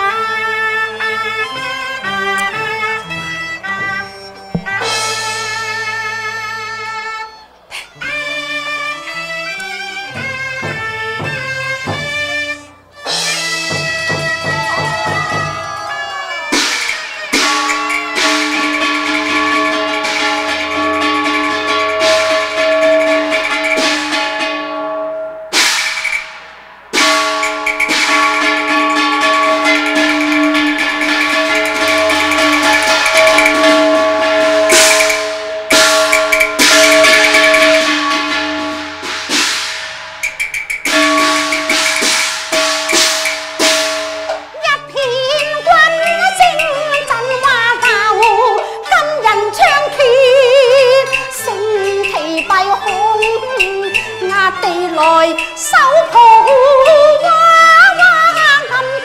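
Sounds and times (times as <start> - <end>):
held melody notes: 0.8 - 15.0, 15.6 - 25.4, 27.0 - 58.6
sharp percussion strikes: 2.0 - 6.1, 9.6 - 58.6.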